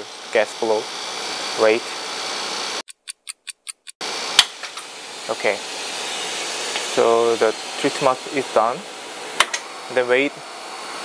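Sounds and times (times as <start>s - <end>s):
steady machine noise: 0.0s - 11.0s
clock ticking: 2.9s - 4.0s
sharp click: 2.9s - 4.5s.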